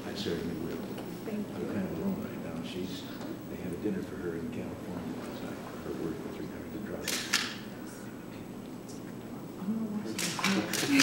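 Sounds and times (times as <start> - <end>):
murmur of voices: 0.0 - 11.0
camera shutter clicks: 7.0 - 7.6.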